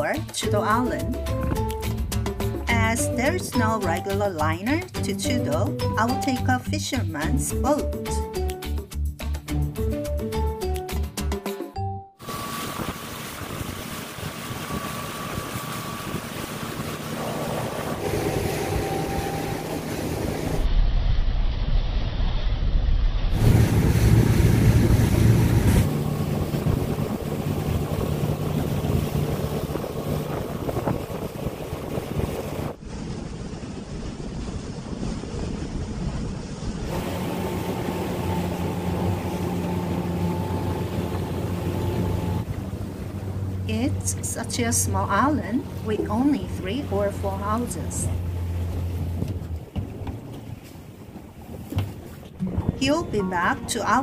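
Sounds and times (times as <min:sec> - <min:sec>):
water rushing past hull: 0:00.0 - 0:08.5, 0:12.2 - 0:54.0
boat engine running: 0:00.0 - 0:11.3, 0:12.2 - 0:20.7, 0:23.3 - 0:54.0
wind buffeting microphone: 0:12.2 - 0:20.7, 0:23.3 - 0:54.0.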